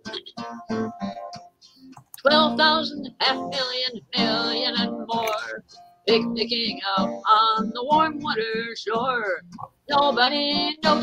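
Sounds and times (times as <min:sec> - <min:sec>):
person singing: 0:00.0 - 0:00.5, 0:02.2 - 0:11.0
acoustic guitar strumming: 0:00.0 - 0:11.0.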